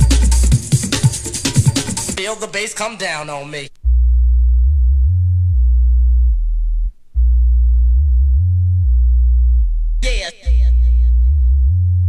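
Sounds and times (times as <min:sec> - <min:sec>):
deep sub-bass notes: 0:03.8 - 0:12.0.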